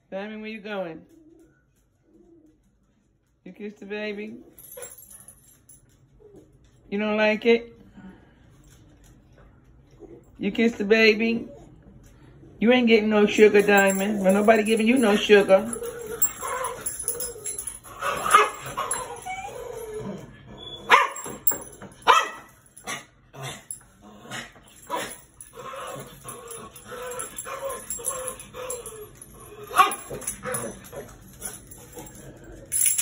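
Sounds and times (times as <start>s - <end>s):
dogs whining and grumbling: 1.0s - 3.1s, 6.0s - 6.8s, 9.8s - 10.4s, 11.2s - 12.6s, 13.3s - 33.0s
dogs barking sharply: 18.0s - 19.2s, 20.8s - 23.1s, 29.7s - 30.6s.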